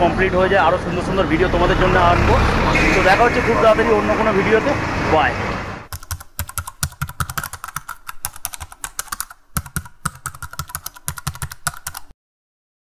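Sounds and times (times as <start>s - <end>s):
keyboard key clicks: 5.9s - 12.1s.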